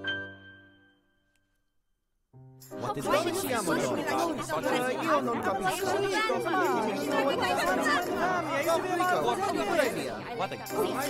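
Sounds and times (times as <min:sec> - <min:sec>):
people talking: 0:02.8 - 0:11.0.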